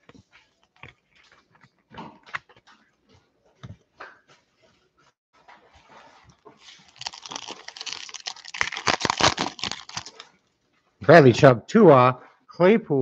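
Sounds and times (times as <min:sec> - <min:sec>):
foil wrapper tearing and crinkling: 0:06.6 - 0:10.3.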